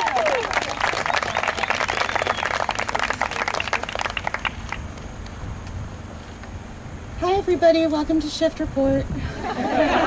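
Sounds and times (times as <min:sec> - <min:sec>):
crowd clapping: 0:00.0 - 0:05.4.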